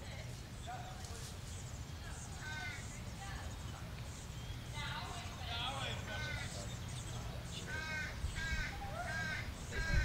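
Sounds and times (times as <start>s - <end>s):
crow cawing: 6.1s - 6.6s, 7.7s - 10.0s.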